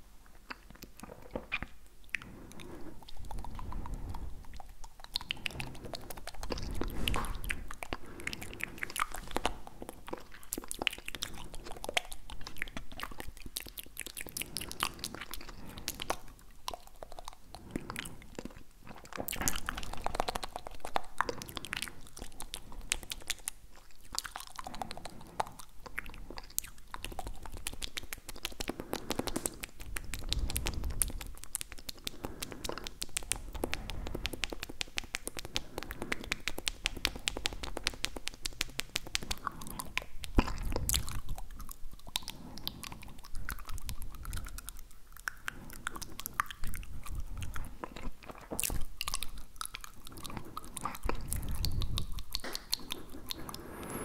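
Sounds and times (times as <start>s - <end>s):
wet tongue clicks and smacks: 0.0s - 54.0s.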